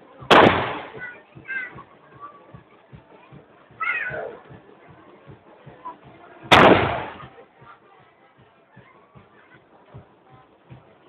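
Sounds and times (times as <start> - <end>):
low thumps: 0.0 - 11.0.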